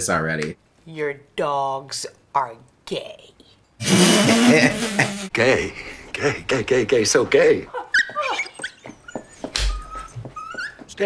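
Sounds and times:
dog whimpering: 7.8 - 11.0.

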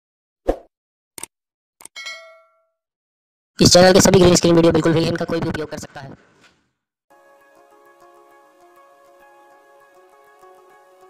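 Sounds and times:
bell ding: 2.0 - 2.8.

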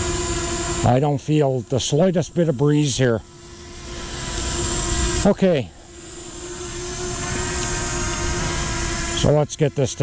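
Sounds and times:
quadcopter propeller hum: 0.0 - 10.0.

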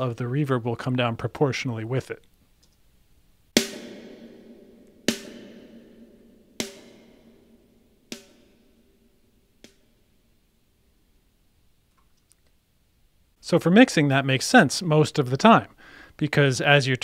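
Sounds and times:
snare drum hits with reverb: 3.6 - 7.5, 8.1 - 8.6.

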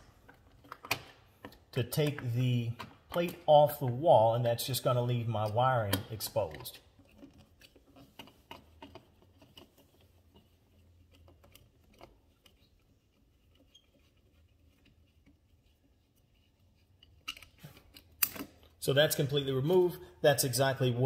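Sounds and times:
screwdriver clicks and scraping: 5.4 - 18.8.

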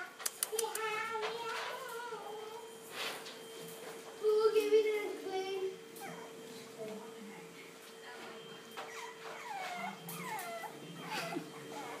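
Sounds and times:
puppy whimpering: 6.0 - 6.4, 8.8 - 12.0.

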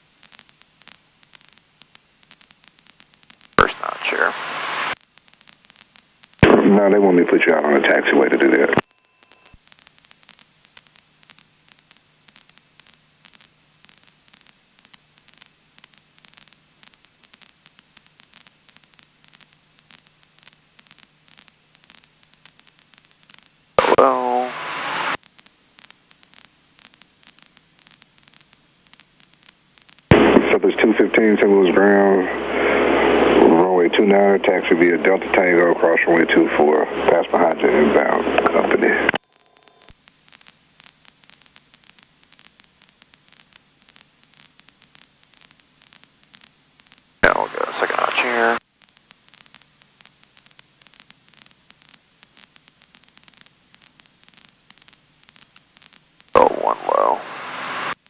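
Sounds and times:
low steady hiss: 0.0 - 58.0
radio voice transmissions: 3.6 - 5.0, 6.4 - 8.8, 23.8 - 25.2, 30.1 - 39.8, 47.2 - 48.6, 56.4 - 57.9.

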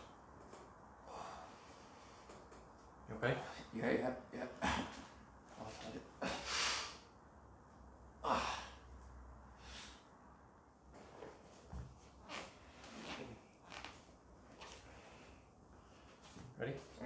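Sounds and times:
man breathing heavily: 1.0 - 2.6, 6.2 - 7.1, 8.2 - 10.1, 14.6 - 16.4.

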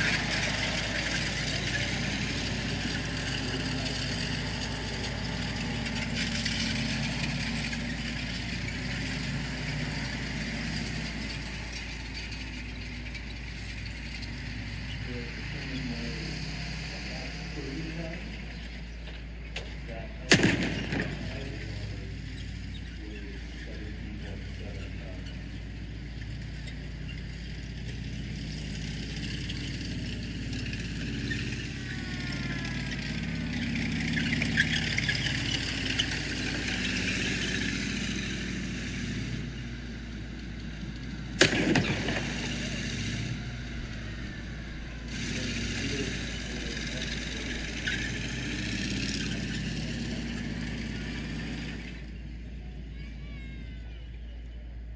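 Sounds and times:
tanks driving on gravel: 0.0 - 54.9
loud booms from charges: 20.3 - 21.4, 41.4 - 42.8.

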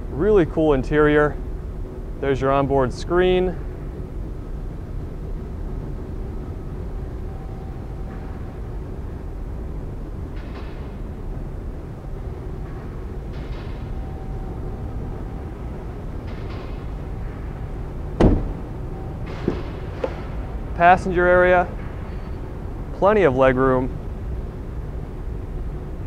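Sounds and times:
low background rumble: 0.0 - 26.0
car door latch click: 18.2 - 18.6.

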